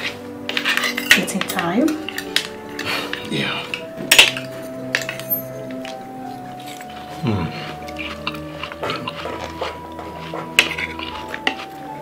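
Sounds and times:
cutlery clinking on a plate: 0.0s - 6.0s, 7.9s - 11.7s
background music with sustained notes: 0.0s - 12.0s.

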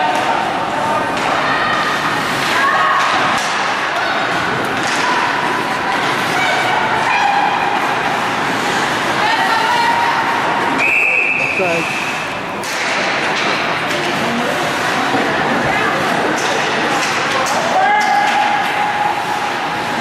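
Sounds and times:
ice hockey game din: 0.0s - 20.0s
referee's whistle: 10.8s - 12.3s.

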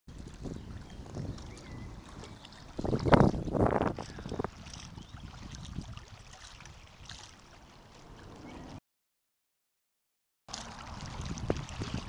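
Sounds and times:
wind buffeting microphone: 0.1s - 8.8s, 10.6s - 12.0s.

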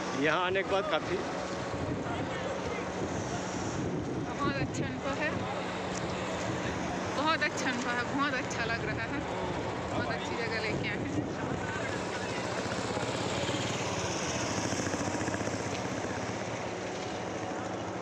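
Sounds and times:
wind noise on microphone: 1.5s - 7.2s, 8.5s - 12.2s.

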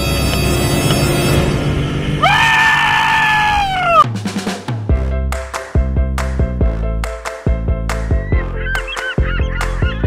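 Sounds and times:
person screaming excitedly: 2.2s - 4.0s.

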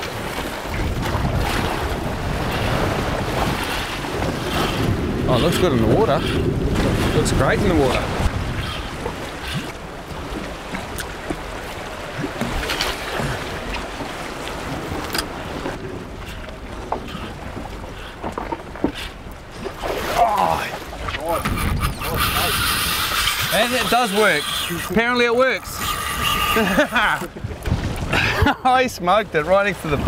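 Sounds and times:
wind blowing across microphone: 0.0s - 11.6s, 20.6s - 30.0s
sea noise: 0.0s - 30.0s.

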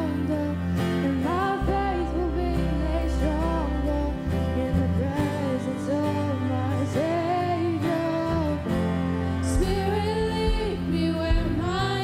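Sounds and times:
guitar: 0.0s - 12.0s
low sustained bass notes: 0.0s - 12.0s
women singing together: 9.4s - 12.0s.

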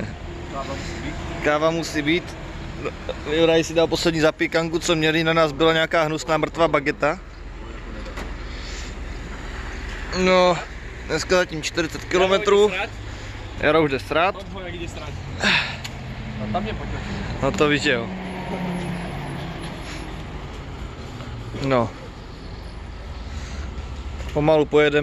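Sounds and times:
constant rumble: 0.0s - 18.1s
road traffic and lorries: 0.0s - 25.0s.

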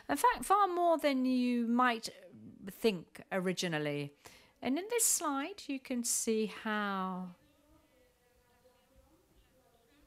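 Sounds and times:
faint steady hum: 4.1s - 10.0s.

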